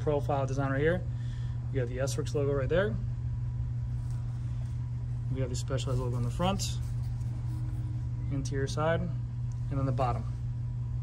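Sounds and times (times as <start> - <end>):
faint rumble: 0.0 - 11.0
steady low hum: 0.0 - 11.0.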